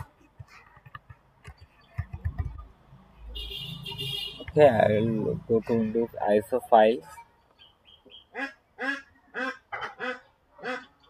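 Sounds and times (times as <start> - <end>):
bird calling: 7.6 - 11.0.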